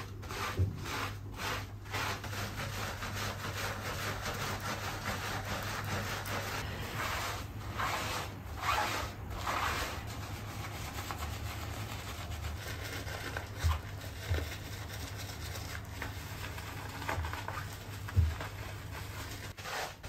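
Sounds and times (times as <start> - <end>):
rubbing wet dog fur: 0.0 - 20.0
low steady hum: 6.6 - 16.6.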